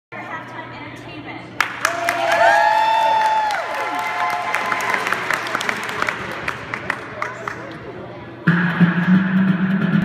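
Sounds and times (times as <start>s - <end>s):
loud recorded music: 8.4s - 10.0s.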